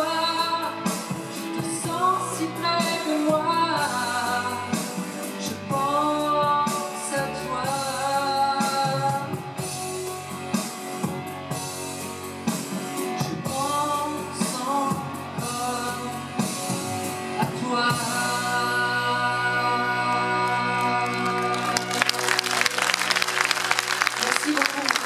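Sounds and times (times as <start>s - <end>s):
man singing pop ballad: 0.0s - 9.8s, 13.2s - 21.8s
drums and guitar accompaniment: 0.0s - 25.0s.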